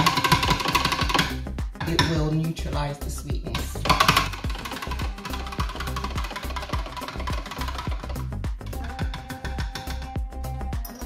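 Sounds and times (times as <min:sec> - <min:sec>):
repeating bass line: 0:00.0 - 0:10.9.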